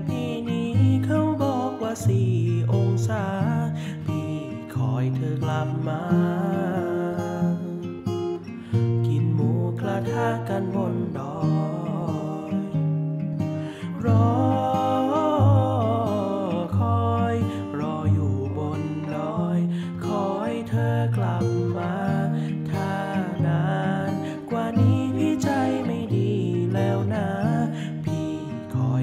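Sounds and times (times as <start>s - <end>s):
man singing a pop song: 0.0s - 12.9s, 13.6s - 29.0s
acoustic guitar strumming chords: 0.0s - 29.0s.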